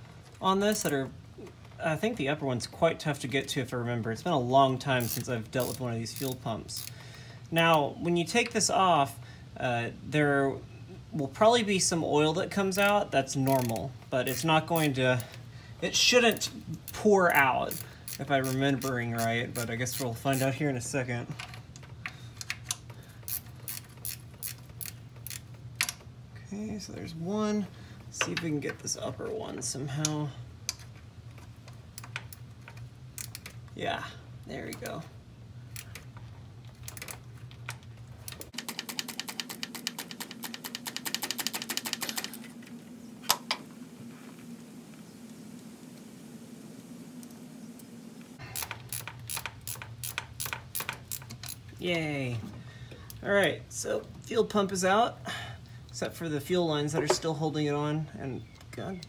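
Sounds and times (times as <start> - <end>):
socket ratchet clicking: 5.0 - 6.9, 22.4 - 26.0, 48.6 - 51.7.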